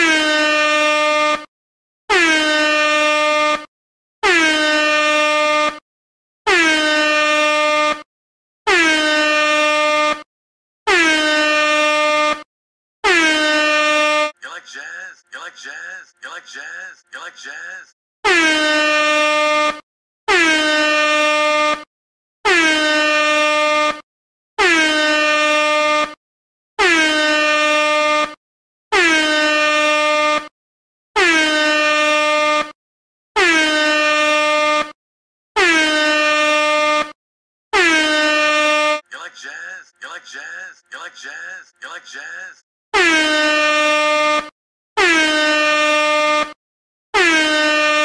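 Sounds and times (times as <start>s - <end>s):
air horn blasts: 0.0s - 1.5s, 2.1s - 5.8s, 6.5s - 8.1s, 8.7s - 10.3s, 10.9s - 14.4s, 18.2s - 24.0s, 24.6s - 26.2s, 26.8s - 30.5s, 31.2s - 32.8s, 33.4s - 35.0s, 35.6s - 39.0s, 43.0s - 46.6s, 47.2s - 48.0s.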